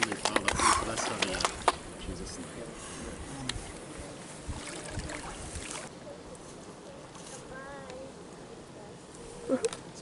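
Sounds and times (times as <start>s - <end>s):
steady outdoor hiss: 0.0s - 10.0s
water sloshing and splashing: 4.5s - 5.9s.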